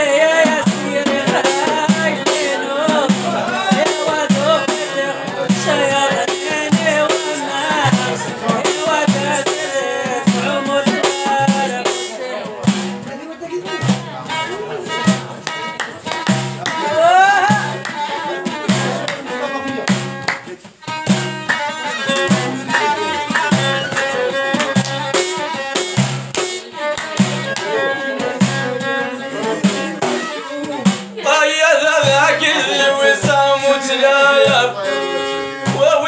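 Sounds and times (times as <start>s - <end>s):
bowed fiddle melody: 0.0s - 36.0s
hand drum beat: 0.0s - 36.0s.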